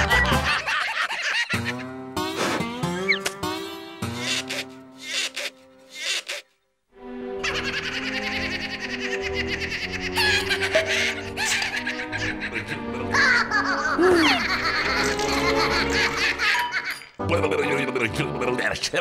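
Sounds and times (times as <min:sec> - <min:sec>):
high-pitched animated laughing voice: 0:07.4 - 0:16.6
cartoon music: 0:12.7 - 0:16.3.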